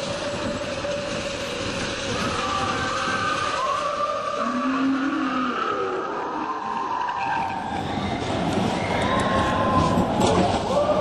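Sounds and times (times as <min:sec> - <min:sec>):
roller coaster car rushing rumble: 0:00.0 - 0:11.0.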